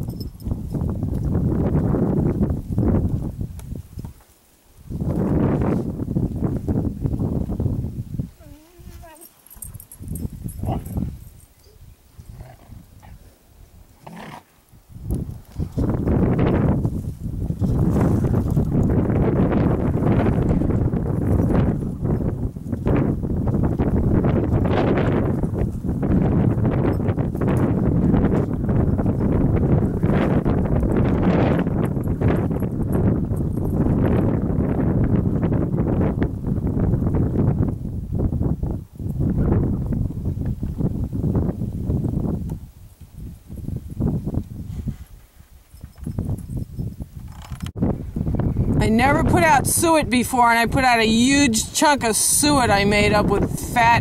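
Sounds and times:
donkeys braying: 10.5s - 13.3s.

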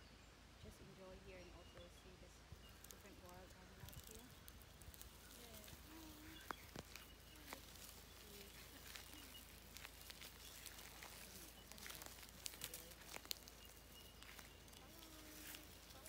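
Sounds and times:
crackles of dry leaf litter: 0.6s - 16.0s.

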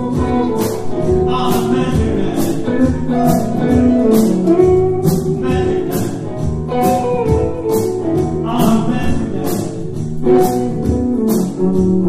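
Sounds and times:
drum and cymbal hits: 0.0s - 12.0s
electric guitar notes: 0.0s - 12.0s.

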